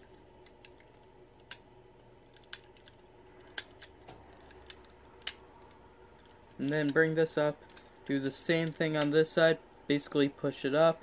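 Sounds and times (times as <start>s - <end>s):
plastic toy parts clicking: 2.3s - 9.2s.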